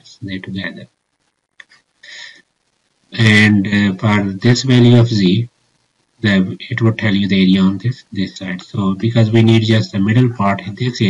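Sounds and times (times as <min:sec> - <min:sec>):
soft breath: 0:02.0 - 0:02.4.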